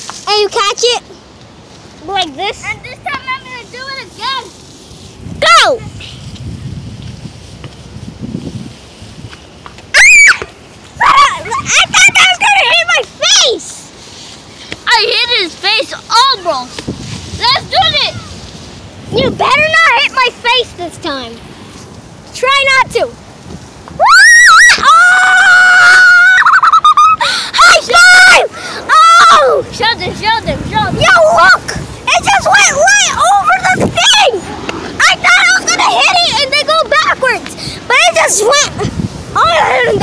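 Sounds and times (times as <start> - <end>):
wind rumble on microphone: 1.7 - 14.8, 15.5 - 26.3, 26.9 - 40.0
child screaming: 9.9 - 13.6, 24.0 - 29.7, 32.4 - 34.4, 37.9 - 40.0.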